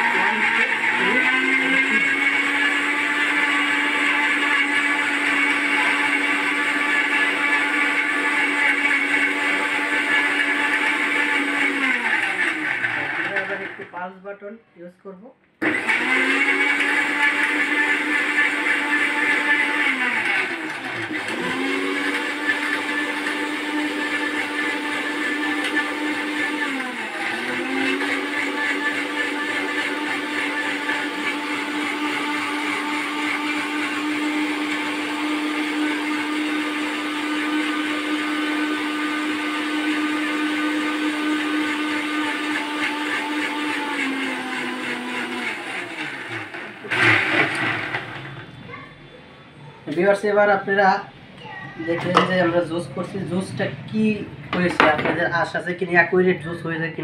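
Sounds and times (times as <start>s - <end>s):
mixer grinder motor running: 0.0s - 14.2s, 15.6s - 48.7s, 51.8s - 57.0s.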